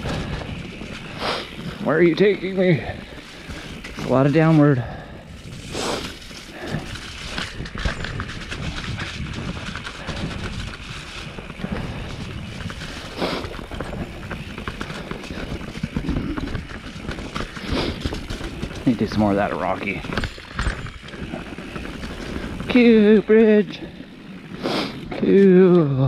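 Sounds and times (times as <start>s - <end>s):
bike knocking over bumps: 0.0s - 24.5s
bike rattling: 0.0s - 26.0s
bike tyres on dirt: 0.0s - 26.0s.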